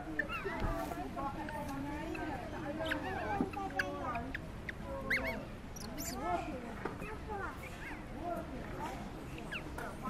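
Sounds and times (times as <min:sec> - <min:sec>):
baby monkey squeaky crying: 0:02.1 - 0:06.3, 0:09.4 - 0:09.7.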